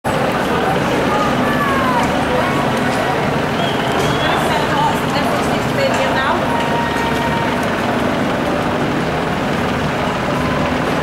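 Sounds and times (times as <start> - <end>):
echoing stadium background roar: 0.0 - 11.0
distant indistinct voices: 0.1 - 11.0.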